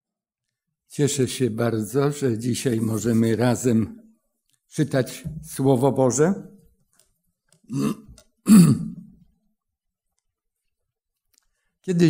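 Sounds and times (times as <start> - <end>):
man speaking: 0.9 - 4.0, 4.7 - 6.6.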